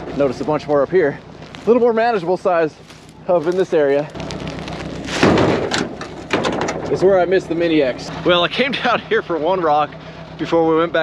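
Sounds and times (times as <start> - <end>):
rocks scraping on metal truck bed: 0.0 - 8.4.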